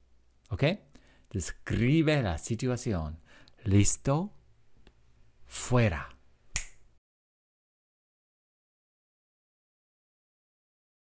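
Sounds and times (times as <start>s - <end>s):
sharp click: 6.5s - 6.8s.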